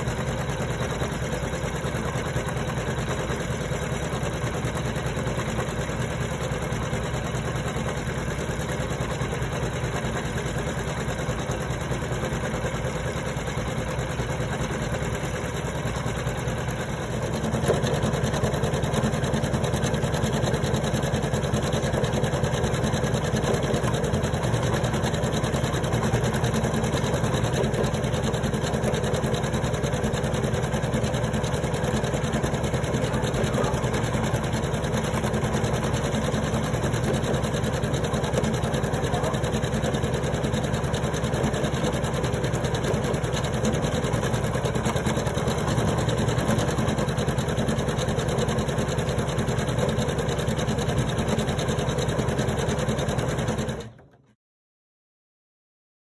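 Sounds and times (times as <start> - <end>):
embroidery machine stitching: 0.0 - 54.3.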